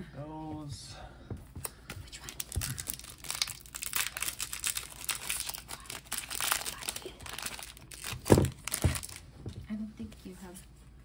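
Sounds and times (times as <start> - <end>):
foil wrapper crinkling and tearing: 2.2 - 9.2.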